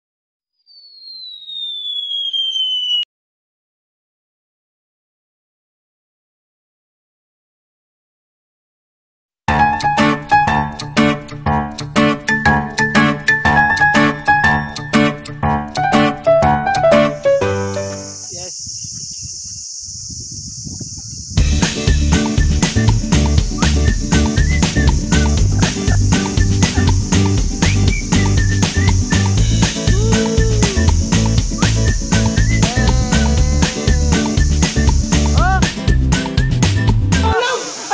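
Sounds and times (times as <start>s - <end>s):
high whistle-like tone gliding down: 0.6s - 3.1s, 22.3s - 35.6s
piano-like intro music: 9.5s - 18.2s
crickets chirping: 17.2s - 35.6s, 37.2s - 37.9s
loud music with a beat: 21.5s - 37.2s.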